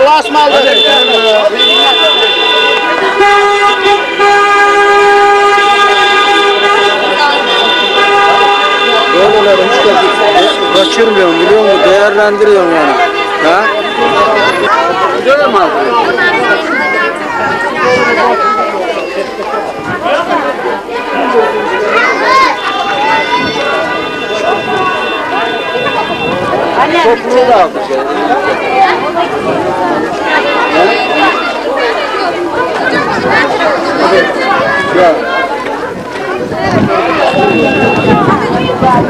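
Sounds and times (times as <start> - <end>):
car horns honking: 0.0 - 15.9, 21.7 - 27.6, 28.3 - 32.0, 36.9 - 38.8
people chattering: 0.0 - 39.0.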